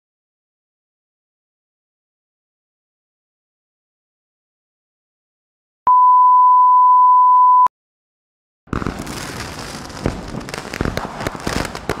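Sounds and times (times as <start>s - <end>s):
dense crackling with sharp pops: 8.7s - 12.0s.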